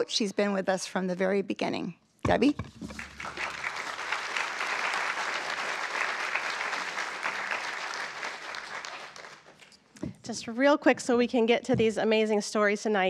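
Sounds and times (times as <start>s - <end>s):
audience applauding: 2.8s - 9.6s.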